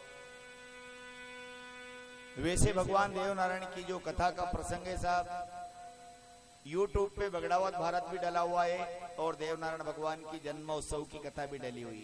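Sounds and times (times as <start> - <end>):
faint buzzy hum: 0.0 - 12.0.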